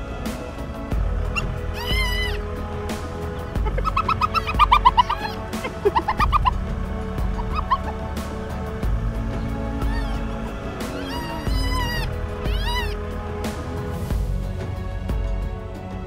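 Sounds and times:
background music: 0.0 - 16.0
hyena calls: 1.3 - 13.5.

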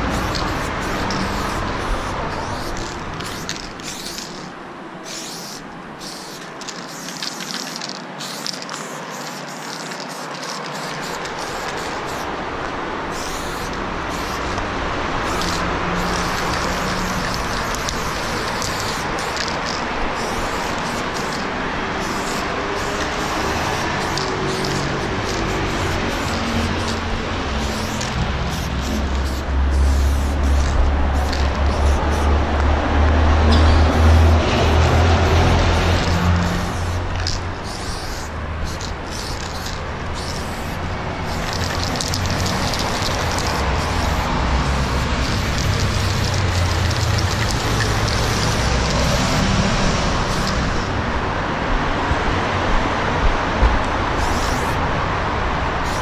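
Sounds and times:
aerosol spray can hissing: 0.0 - 12.3, 13.1 - 32.4, 33.5 - 49.5, 50.1 - 50.9, 54.2 - 54.8
vehicle engine rumble: 0.0 - 56.0.

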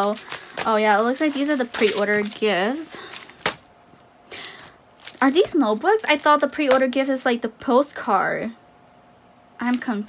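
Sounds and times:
plastic packaging rustling: 0.0 - 7.0.

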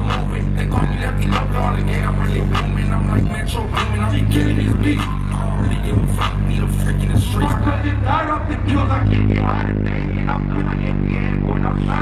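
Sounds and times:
deep held bass note: 0.0 - 12.0
hip-hop beat over pa: 0.0 - 12.0
rapping over a beat: 0.0 - 12.0.

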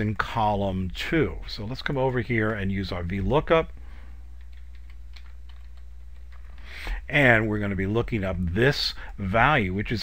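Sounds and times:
low steady hum: 0.0 - 10.0
keyboard typing: 4.4 - 6.8.

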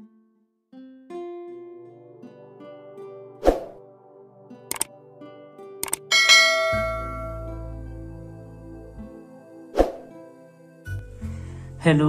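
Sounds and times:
soft background music: 1.0 - 12.0
mouse clicks: 5.8 - 6.1
bell-like ding: 6.1 - 7.7.

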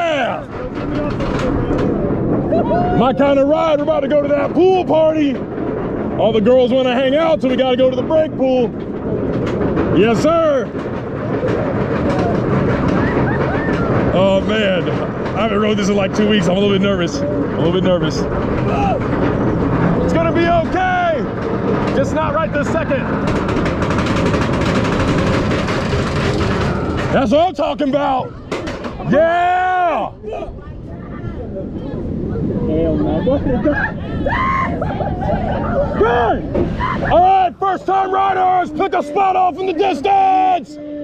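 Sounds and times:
chain lift rumble and clatter: 0.0 - 40.4.

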